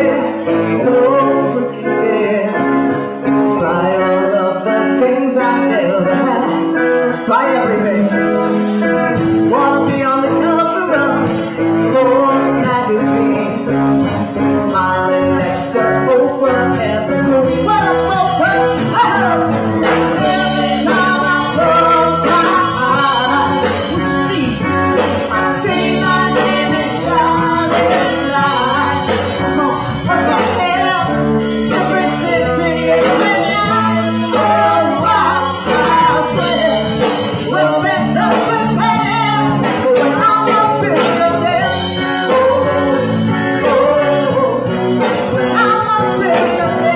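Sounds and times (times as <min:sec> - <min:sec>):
bass guitar: 0:00.0 - 0:46.9
electric guitar: 0:00.0 - 0:46.9
woman singing: 0:00.0 - 0:46.9
drum kit with cymbal beat: 0:08.1 - 0:46.9.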